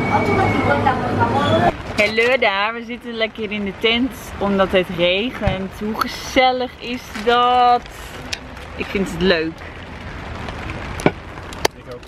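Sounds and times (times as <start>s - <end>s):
rain falling on a tent: 1.7s - 12.0s.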